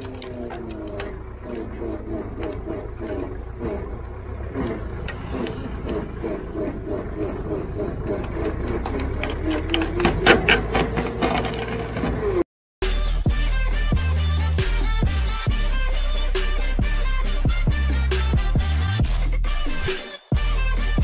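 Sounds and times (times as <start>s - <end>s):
wood chipper rumbling: 0.0s - 12.4s.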